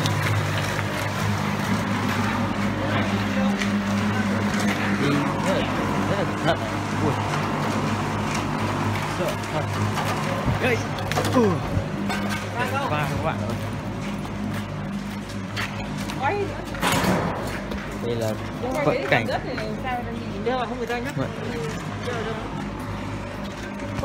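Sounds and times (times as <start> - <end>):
indistinct voices talking: 2.4 - 16.8.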